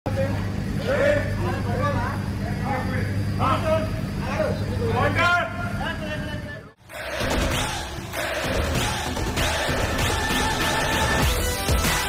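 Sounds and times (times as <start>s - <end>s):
steady low hum: 0.1s - 11.7s.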